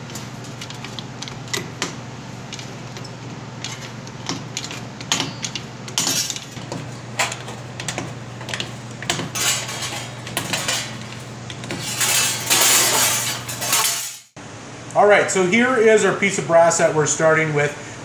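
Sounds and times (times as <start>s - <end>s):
sheet metal rattling and scraping: 0.0s - 14.2s.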